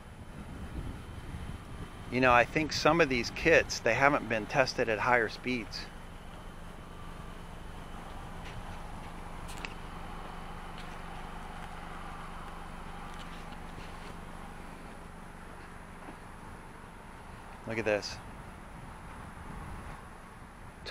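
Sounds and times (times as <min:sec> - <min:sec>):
steady low hum: 0:00.0 - 0:20.9
footsteps on pavement: 0:07.9 - 0:16.7.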